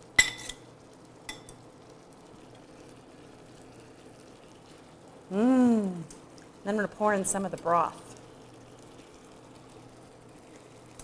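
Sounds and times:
metal tongs clinking on pan and bowl: 0.2s - 0.7s, 1.3s - 1.6s.

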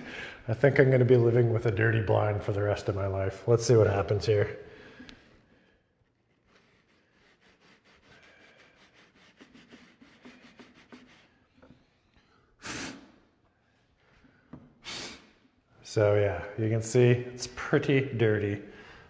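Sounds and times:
short puffs of breath: 0.0s - 0.5s, 7.2s - 15.6s
fingertip rubbing fabric: 6.1s - 12.9s.

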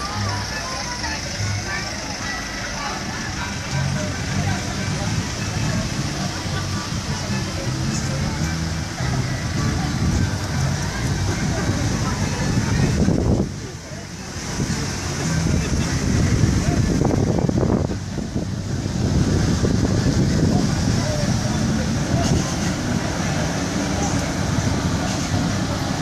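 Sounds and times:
crowd chatter: 0.0s - 26.0s
minibus engines: 0.0s - 26.0s
music with low bass: 0.0s - 26.0s.

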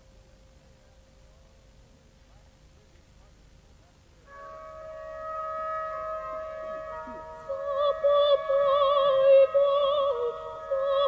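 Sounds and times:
orchestral woodwinds chord: 4.3s - 11.0s
soprano singing with vibrato: 6.7s - 11.0s.

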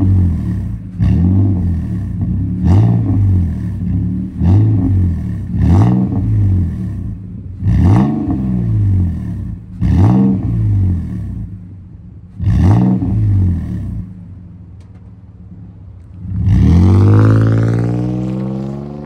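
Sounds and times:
truck engine revving: 16.1s - 19.0s.

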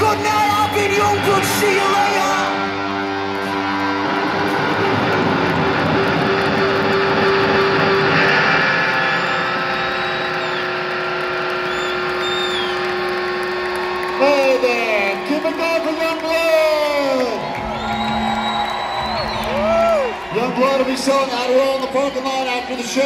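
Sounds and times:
man talking over loudspeaker: 0.0s - 2.7s, 14.2s - 17.5s, 20.3s - 23.0s
crowd cheering and whistling: 0.0s - 23.0s
ringing electric guitar chord: 1.2s - 14.0s.

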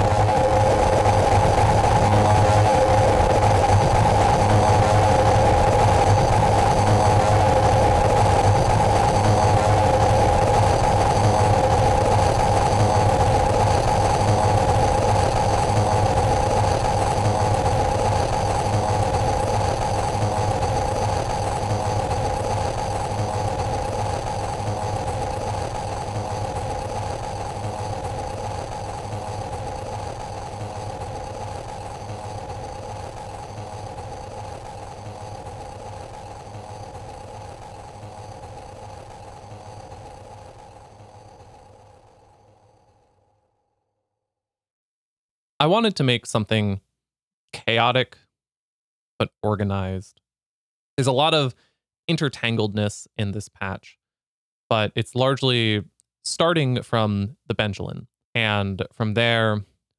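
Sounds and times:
noisy grit: 0.0s - 42.6s
synthesizer drone: 0.0s - 43.2s
low hum: 0.0s - 43.3s.

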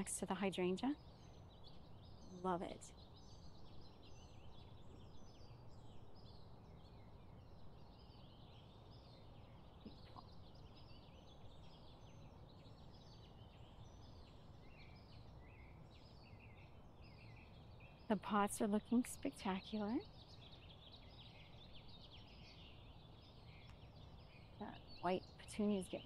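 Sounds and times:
small birds chirping: 0.0s - 26.0s.

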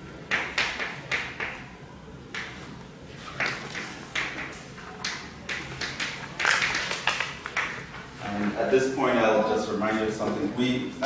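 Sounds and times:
chalk tapping and scratching: 3.3s - 7.8s.

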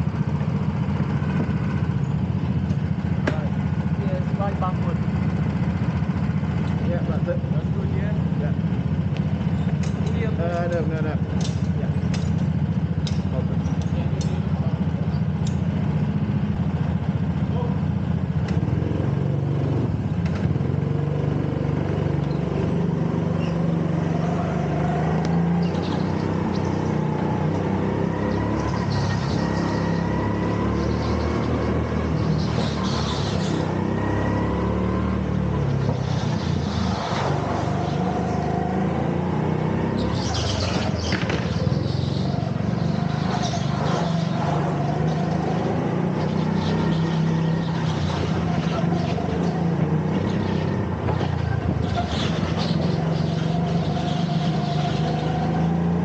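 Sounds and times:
go-kart engine revving: 0.0s - 56.0s.

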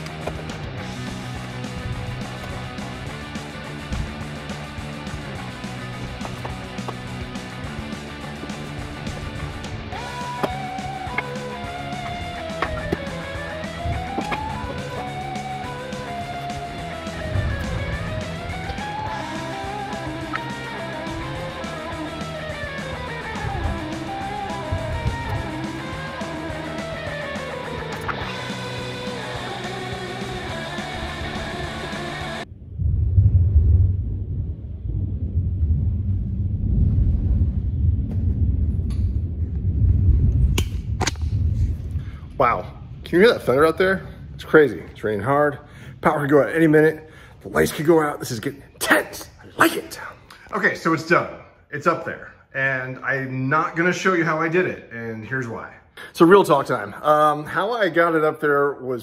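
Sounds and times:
rock music with guitar: 0.0s - 32.4s
rolling thunder rumble: 16.8s - 19.6s, 32.4s - 46.8s.

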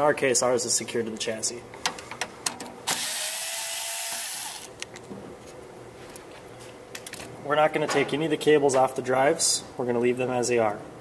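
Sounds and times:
cordless electric screwdriver running: 2.9s - 4.7s.

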